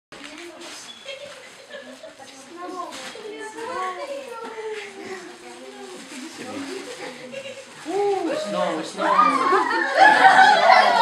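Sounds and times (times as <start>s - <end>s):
children chattering: 0.2s - 11.0s.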